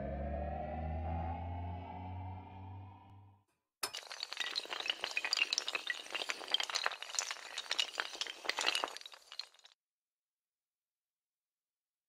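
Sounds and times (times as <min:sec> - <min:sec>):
tiles toppling like dominoes: 0:03.8 - 0:09.8.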